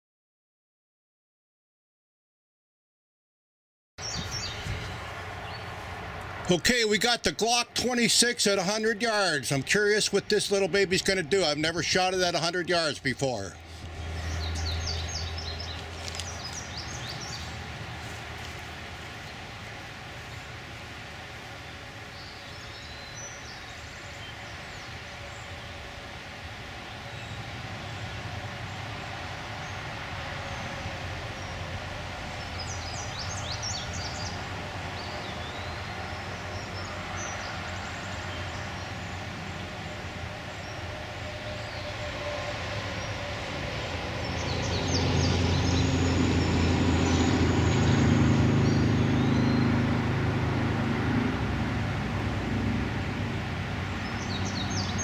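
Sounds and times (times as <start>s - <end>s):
bird chirps: 4.0s - 5.8s, 13.2s - 17.6s, 48.6s - 49.8s, 54.0s - 55.0s
low engine-like rumble: 4.0s - 55.0s.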